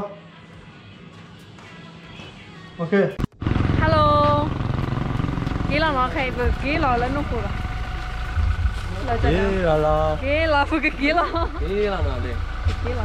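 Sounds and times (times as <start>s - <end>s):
steady low rumble: 3.4s - 13.0s
people calling out and talking: 5.6s - 13.0s.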